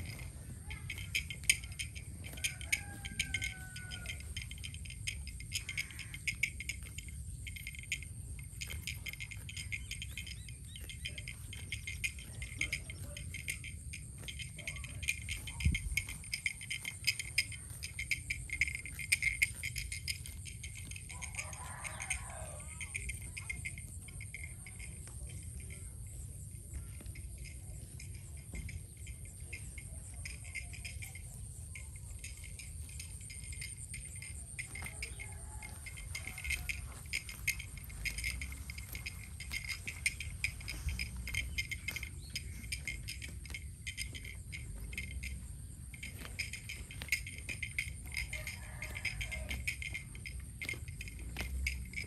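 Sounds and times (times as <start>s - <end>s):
insects chirping and rattling: 0.0s - 52.0s.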